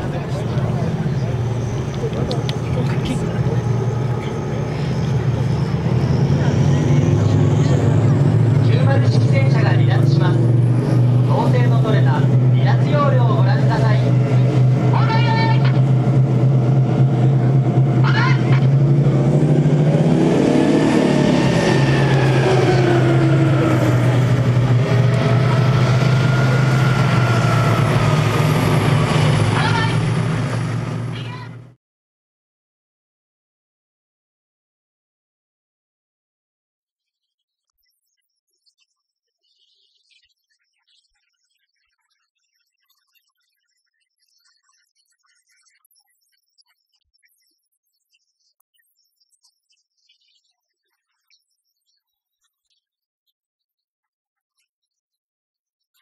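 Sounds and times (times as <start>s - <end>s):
people's voices: 0.0s - 31.7s
tank diesel engine running: 0.0s - 31.8s.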